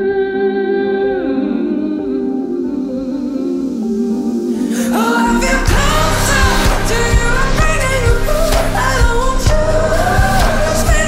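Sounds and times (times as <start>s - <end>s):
person singing: 0.0s - 11.0s
drumbeat and bass: 5.5s - 11.0s.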